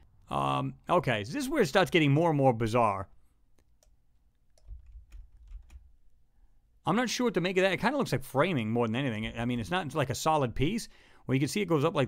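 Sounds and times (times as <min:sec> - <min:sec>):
keyboard and mouse clicks: 0:03.6 - 0:05.9.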